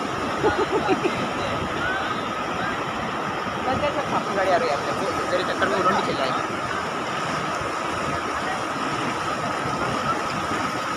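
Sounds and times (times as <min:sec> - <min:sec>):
floodwater rushing: 0:00.0 - 0:10.9.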